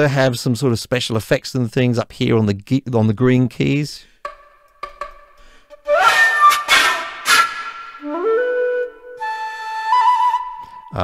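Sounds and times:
bamboo flute playing: 5.8 - 11.0.

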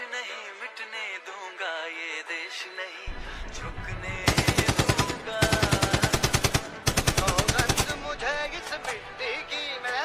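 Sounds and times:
machine-gun fire bursts: 3.6 - 8.4.

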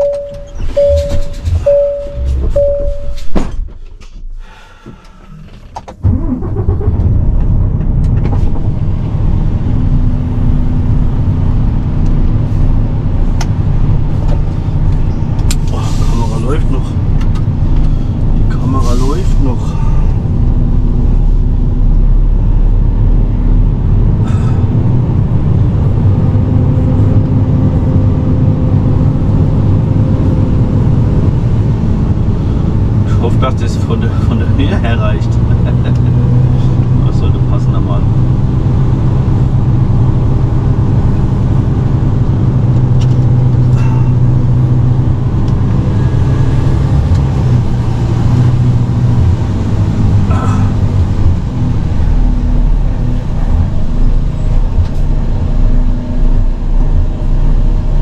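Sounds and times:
truck diesel engine droning: 0.0 - 58.0.

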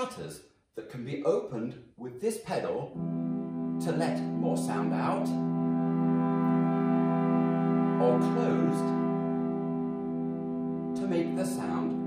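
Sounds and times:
pipe organ chord: 2.9 - 12.0.

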